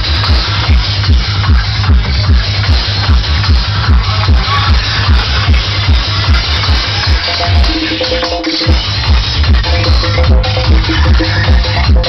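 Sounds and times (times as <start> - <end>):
deep kick drum: 0.0 - 12.0
psytrance dance music: 0.0 - 12.0.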